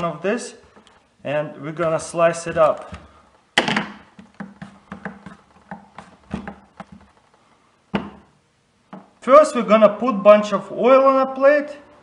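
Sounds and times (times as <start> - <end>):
potato slicing on mandoline: 4.2 - 7.1.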